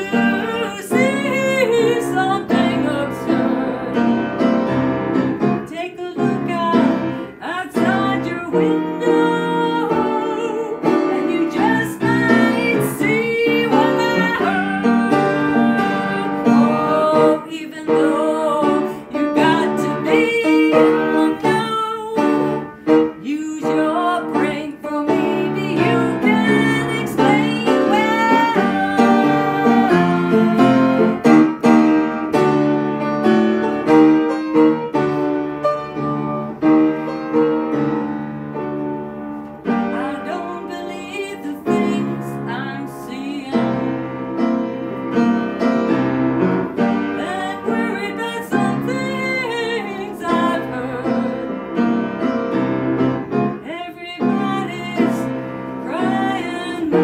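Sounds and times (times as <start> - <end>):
upright piano playing: 0.0 - 57.0.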